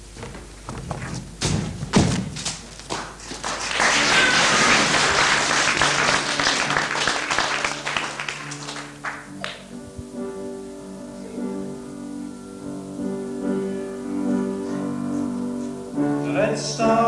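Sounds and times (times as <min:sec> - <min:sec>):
thuds and knocks on stage: 0:00.2 - 0:02.7
audience applause: 0:02.9 - 0:09.6.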